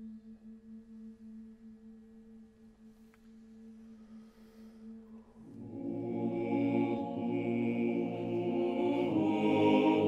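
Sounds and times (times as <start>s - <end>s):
choir holding soft note: 4.0s - 10.0s.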